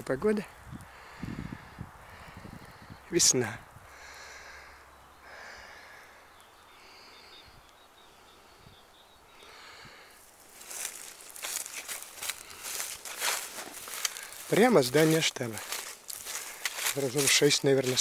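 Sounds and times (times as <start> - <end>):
footsteps crunching dry leaves: 10.2 - 18.0.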